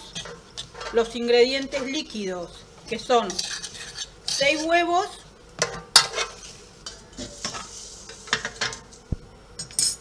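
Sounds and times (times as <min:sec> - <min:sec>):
fork beating eggs in metal bowl: 0:00.0 - 0:08.6.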